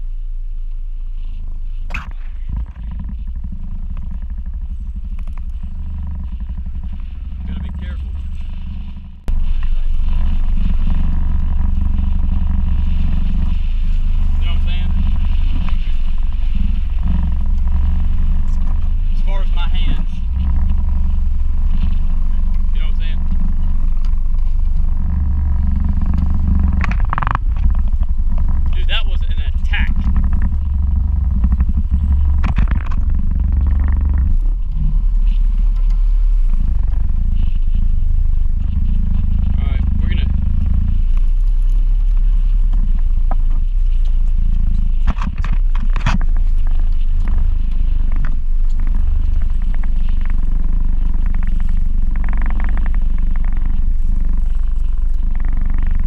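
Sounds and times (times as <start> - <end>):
boat motor running: 0.0 - 56.0
wind buffeting microphone: 0.0 - 56.0.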